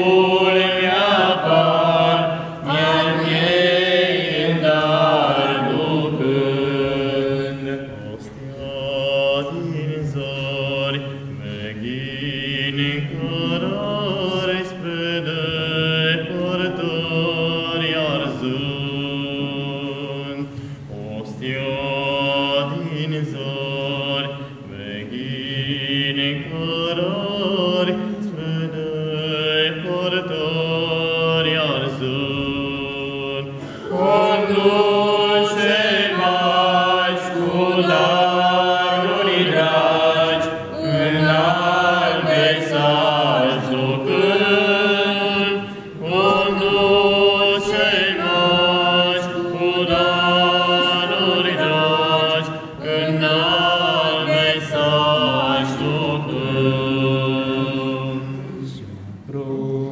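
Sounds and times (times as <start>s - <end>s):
men singing unaccompanied carol: 0.0s - 59.9s.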